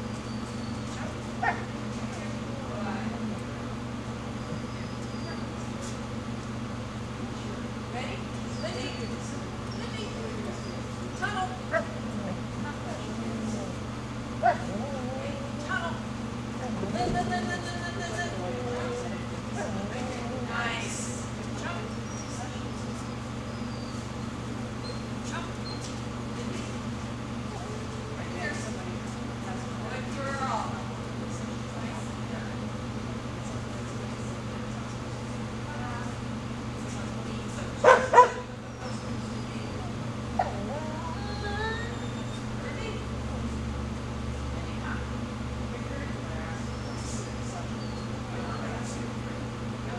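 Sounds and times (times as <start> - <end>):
steady low hum: 0.0 - 49.9
dog yipping: 0.3 - 1.7, 14.4 - 15.4, 37.8 - 39.6
small dog barking: 1.4 - 1.7, 14.4 - 14.7, 37.8 - 38.5.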